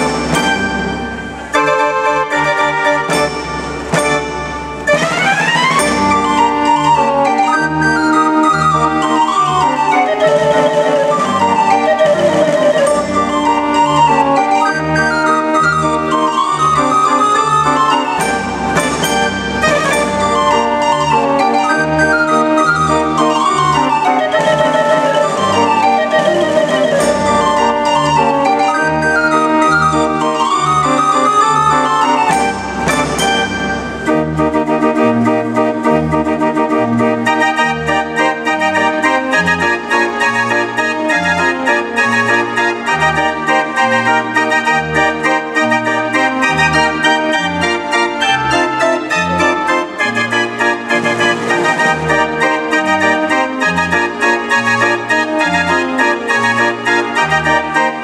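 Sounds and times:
street organ playing tune: 0.0 - 58.0.

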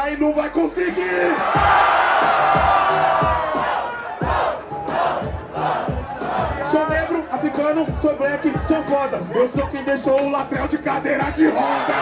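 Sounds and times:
backing beat with low thumps: 0.0 - 11.5
crowd cheering and shouting: 0.0 - 12.0.

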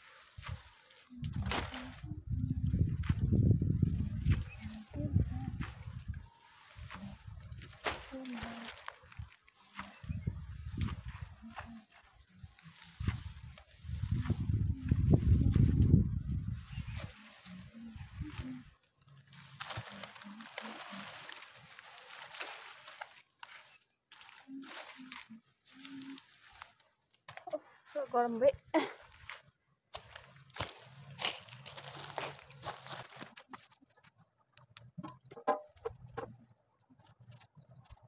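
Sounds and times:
leaves rustling: 0.0 - 33.5
sickle cutting plants: 0.0 - 38.0.

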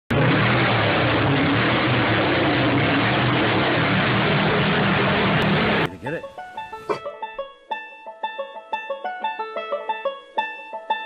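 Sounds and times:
loud engine roaring: 0.1 - 5.9.

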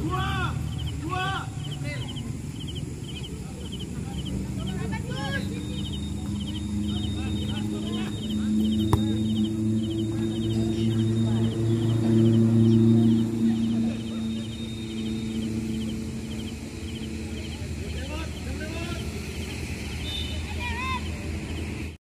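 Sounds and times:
steady low hum: 0.0 - 20.2
players' voices: 0.0 - 21.9
faint high chirping: 0.2 - 18.6
football kicked hard: 8.8 - 9.4.

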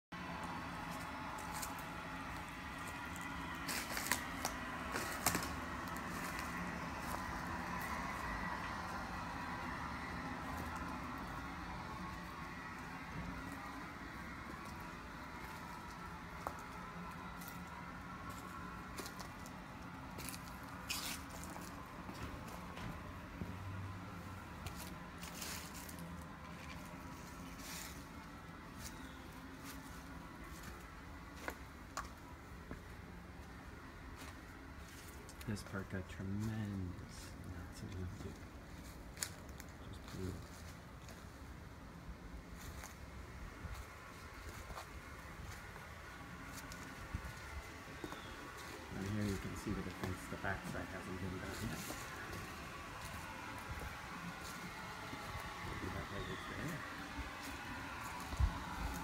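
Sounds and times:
faint outdoor hum: 0.1 - 59.0
footsteps on dry leaves: 0.2 - 35.5, 42.4 - 59.0.

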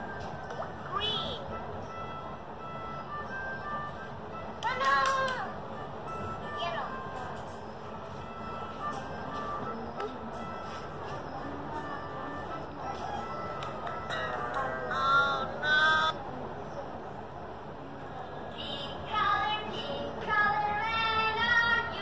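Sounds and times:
music with voices from phone speaker: 0.8 - 1.6, 4.5 - 16.1.

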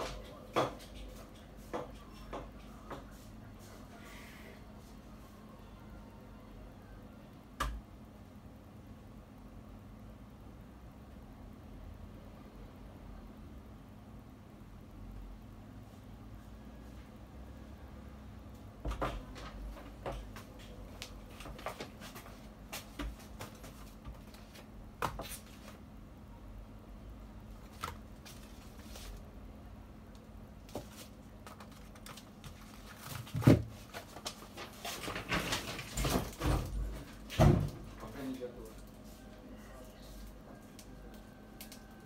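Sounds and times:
faint steady hum: 0.0 - 42.0.

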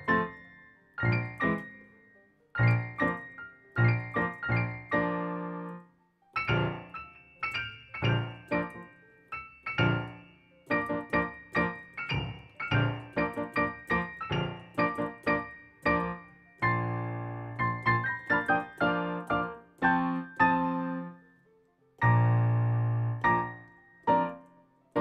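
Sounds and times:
solo classical piano: 0.0 - 21.4, 22.0 - 25.0.

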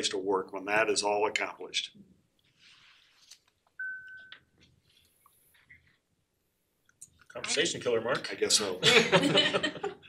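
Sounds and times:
short electronic beep: 3.8 - 4.5.

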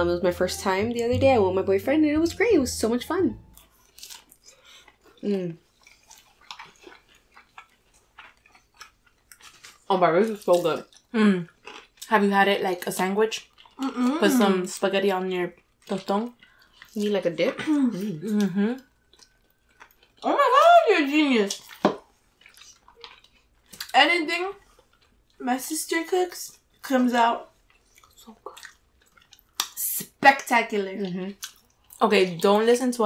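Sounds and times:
chewing: 3.4 - 25.4, 26.5 - 29.8, 31.0 - 32.5.

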